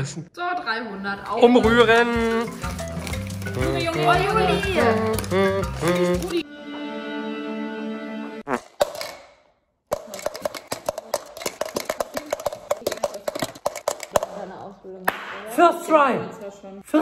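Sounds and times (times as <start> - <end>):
fast irregular clicking and crackling: 9.9 - 14.4.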